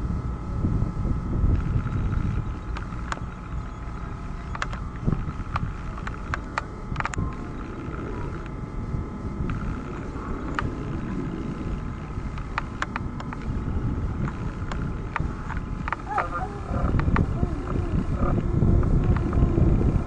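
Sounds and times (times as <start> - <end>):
high whine: 0.0 - 20.0
jet engine rumble: 0.0 - 20.0
sharp clicks: 4.4 - 8.5, 12.3 - 13.6, 14.2 - 18.4.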